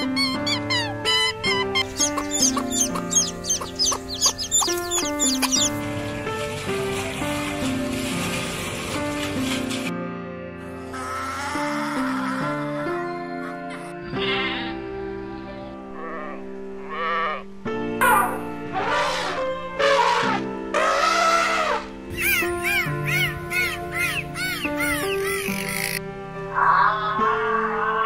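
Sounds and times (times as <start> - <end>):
animal calls: 0.0 - 5.8, 20.0 - 28.0
background music: 0.0 - 28.0.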